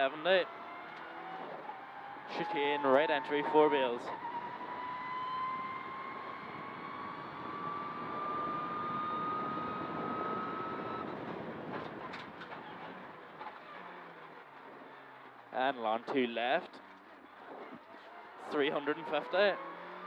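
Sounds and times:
rally car engine whine: 0.0s - 20.0s.

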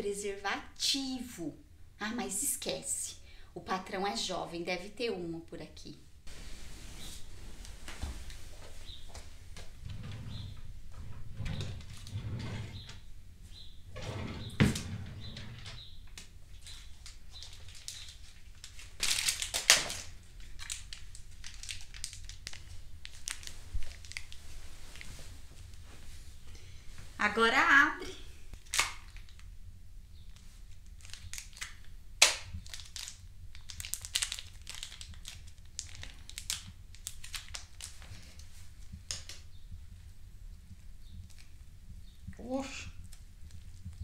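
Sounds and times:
wooden drawer opening: 9.8s - 13.0s, 13.9s - 15.8s.

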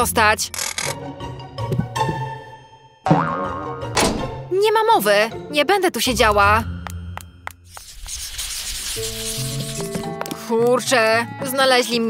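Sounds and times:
background music with held notes: 0.0s - 7.7s, 9.5s - 12.0s.

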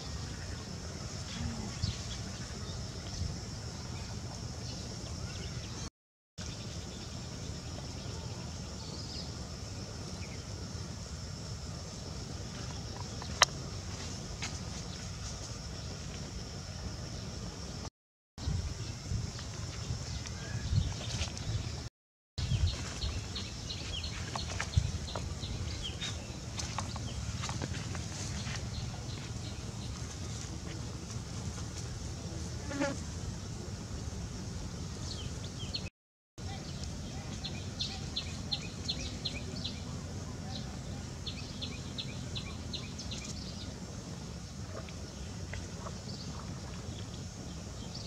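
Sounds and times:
low constant rumble: 6.4s - 48.0s.

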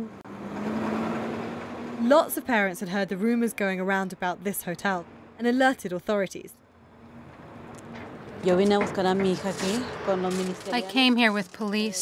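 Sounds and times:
bus driving past: 0.0s - 5.7s, 6.6s - 11.2s.

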